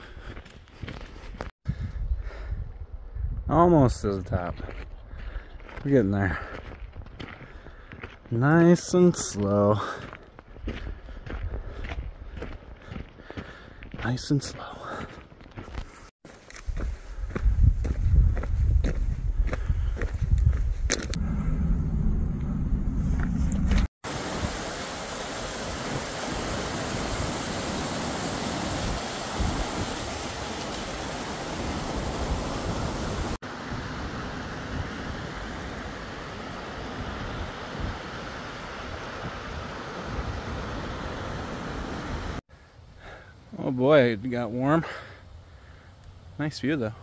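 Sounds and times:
wind rumble on microphone: 1.7 - 3.9, 16.6 - 24.6
boots crunching on gravel: 9.3 - 21.2
stream rushing over boulders: 24.0 - 42.4.

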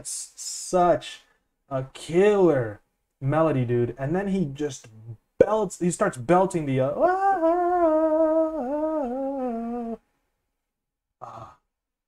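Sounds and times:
man singing a long held note: 7.0 - 10.0.

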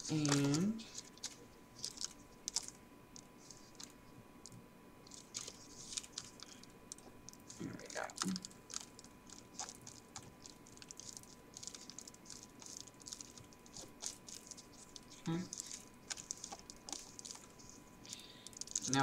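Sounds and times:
paper cupcake liner crinkling: 0.0 - 2.8, 5.1 - 19.0.

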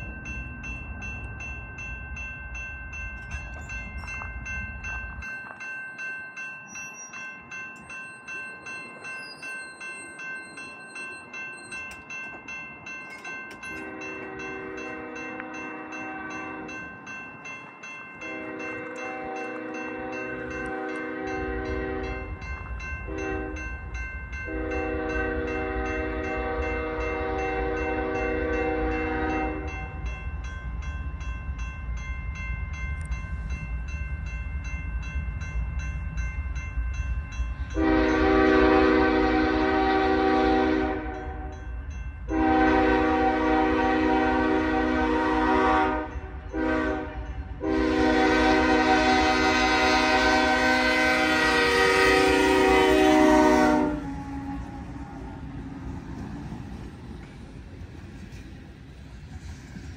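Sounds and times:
crossing bell ringing: 0.0 - 59.2
train rumble: 0.0 - 59.9
locomotive horn blasts: 13.8 - 16.8, 18.2 - 22.3, 23.1 - 23.7, 24.5 - 29.8, 37.8 - 41.6, 42.3 - 55.2.

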